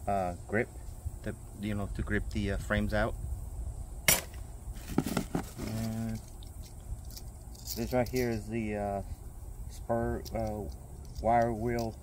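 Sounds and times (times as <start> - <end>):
metal tools clicking: 5.8 - 8.6, 10.1 - 12.0.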